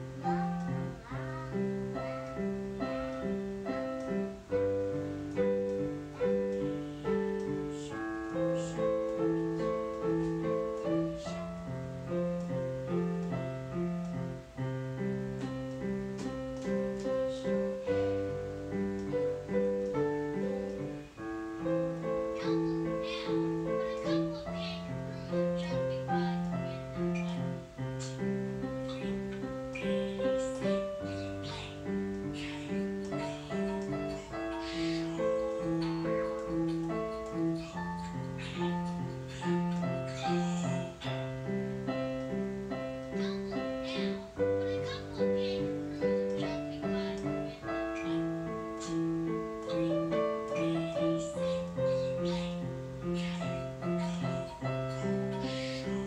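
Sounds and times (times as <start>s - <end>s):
digital piano chords: 0.0s - 56.0s.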